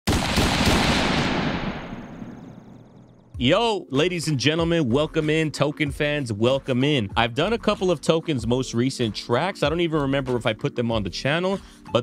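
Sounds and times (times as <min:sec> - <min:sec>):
noisy crackling burst: 0:00.1 - 0:02.6.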